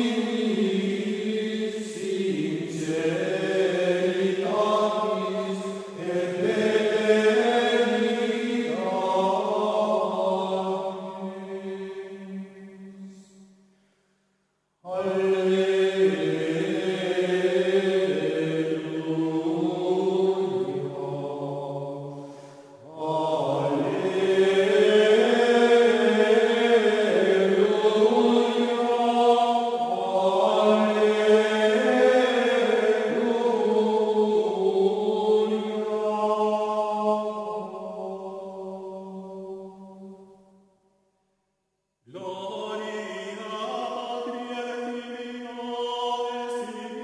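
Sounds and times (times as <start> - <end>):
voices chanting long notes: 14.9 - 39.2.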